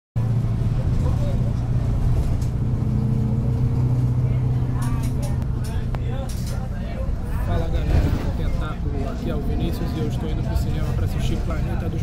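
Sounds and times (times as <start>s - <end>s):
faint passenger voices: 0.2s - 2.6s, 3.4s - 12.0s
bus engine drone: 0.2s - 12.0s
road noise: 0.2s - 12.0s.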